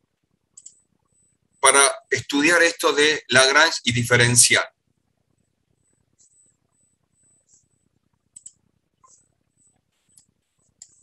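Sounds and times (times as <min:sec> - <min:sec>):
computer mouse clicks: 0:00.6 - 0:00.8, 0:08.3 - 0:11.0.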